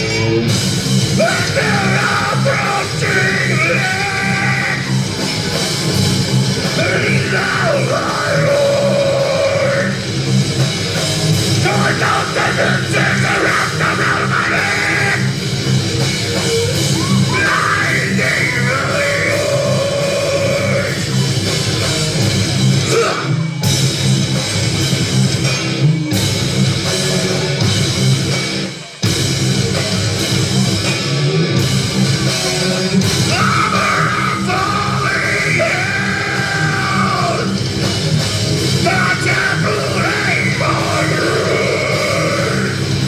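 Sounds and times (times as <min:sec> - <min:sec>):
bass guitar: 0:00.0 - 0:43.0
distorted electric guitar: 0:00.0 - 0:43.0
drum kit: 0:00.0 - 0:43.0
shouted vocal: 0:01.2 - 0:05.5, 0:06.7 - 0:10.0, 0:11.6 - 0:15.4, 0:16.7 - 0:21.0, 0:22.8 - 0:23.6, 0:33.2 - 0:37.6, 0:38.8 - 0:42.8.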